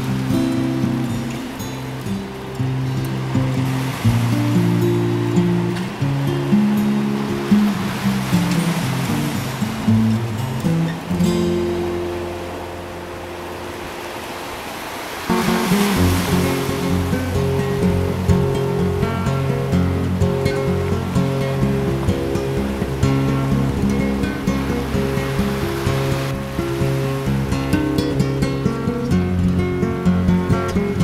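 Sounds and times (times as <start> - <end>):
background music: 0.0 - 14.6, 15.2 - 31.0
rush of noise: 2.0 - 19.7.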